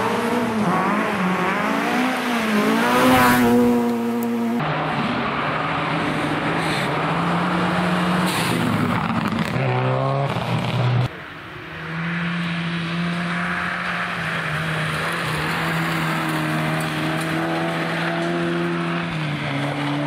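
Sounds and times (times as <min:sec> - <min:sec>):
rally car engine accelerating: 0:00.0 - 0:20.0
smaller rally car engine: 0:00.0 - 0:20.0.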